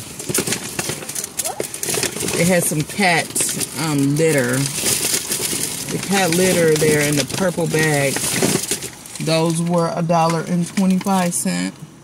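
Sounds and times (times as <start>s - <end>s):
plastic pouch crinkling: 0.0s - 9.6s.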